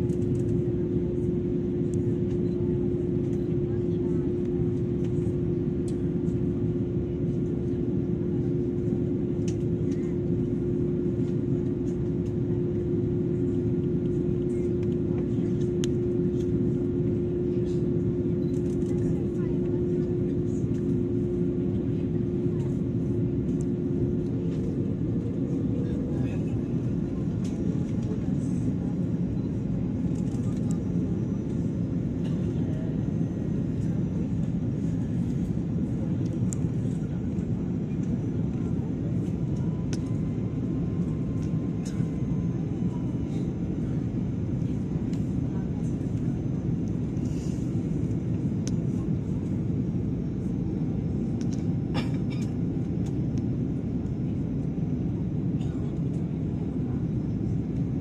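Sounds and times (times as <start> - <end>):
airliner cabin noise: 0.0 - 58.0.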